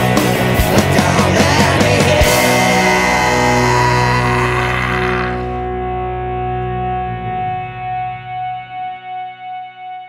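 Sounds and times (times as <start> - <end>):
electric guitar chord ringing: 0.1 - 10.0.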